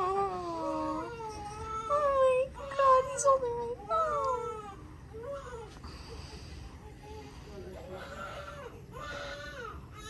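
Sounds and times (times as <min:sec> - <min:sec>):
newborn baby crying softly: 0:00.0 - 0:05.8, 0:06.8 - 0:10.0.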